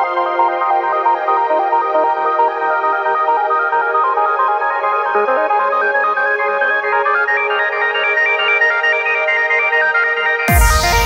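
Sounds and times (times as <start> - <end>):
synthesizer arpeggio: 10.4 - 11.0.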